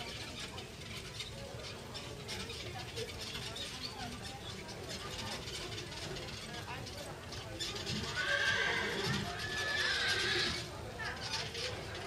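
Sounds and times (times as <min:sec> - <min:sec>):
horse whinnying: 0:08.1 - 0:10.7.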